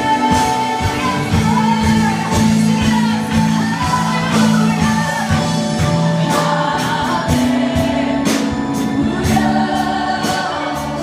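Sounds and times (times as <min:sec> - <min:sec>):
congregation singing: 0:00.0 - 0:11.0
worship band playing: 0:00.0 - 0:11.0.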